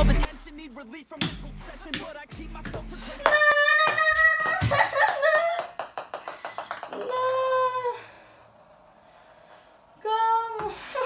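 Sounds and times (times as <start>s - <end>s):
ping-pong balls bouncing: 1.2s - 7.8s
boy yelling: 3.3s - 4.7s.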